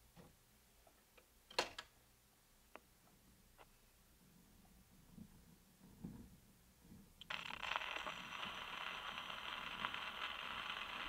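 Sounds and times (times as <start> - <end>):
record surface hiss and crackle: 0.0 - 11.0.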